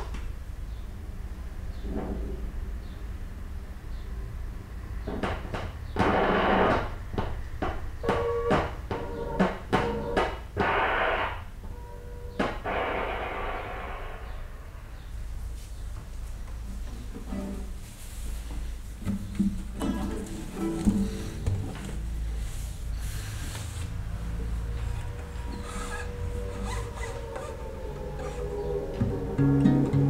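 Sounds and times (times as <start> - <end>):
steady low hum: 5.8 - 30.0.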